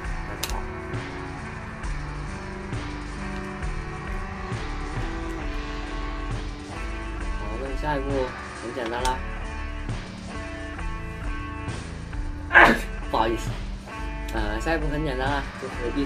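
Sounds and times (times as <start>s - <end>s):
guitar background music: 0.0s - 16.0s.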